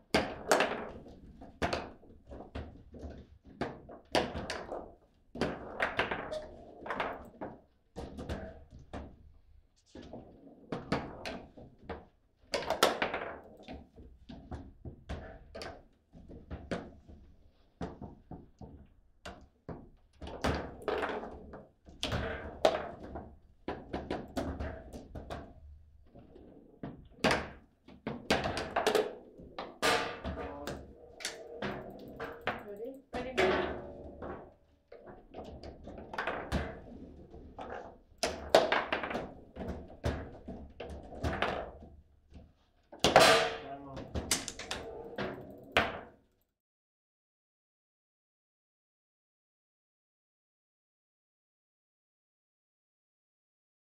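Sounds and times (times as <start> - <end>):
table football rods snapping: 44.3 - 45.7.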